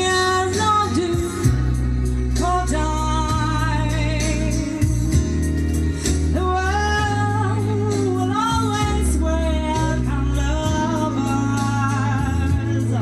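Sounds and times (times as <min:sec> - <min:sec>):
woman singing with vibrato: 0:00.0 - 0:05.6, 0:06.2 - 0:13.0.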